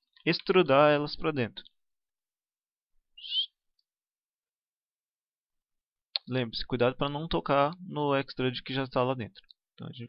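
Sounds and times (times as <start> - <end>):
short high rising chirp: 3.2 - 3.6.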